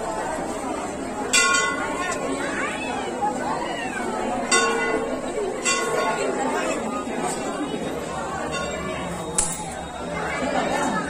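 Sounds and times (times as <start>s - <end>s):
crowd chatter: 0.0s - 11.0s
metal bell struck: 8.5s - 10.2s.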